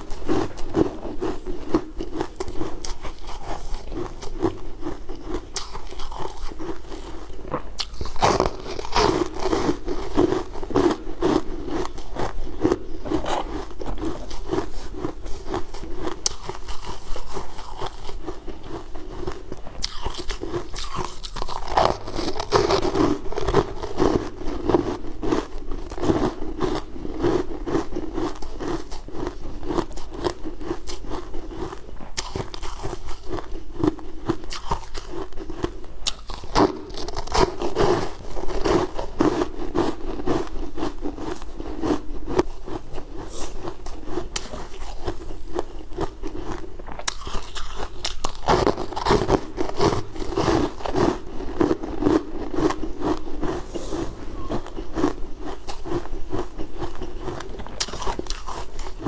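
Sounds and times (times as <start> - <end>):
crunching and chewing ice: 0.0 - 59.0.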